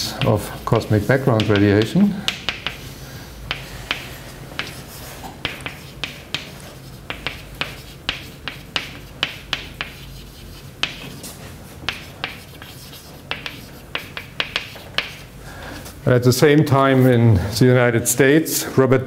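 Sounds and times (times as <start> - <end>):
chalk tapping and scratching: 0.0 - 15.4.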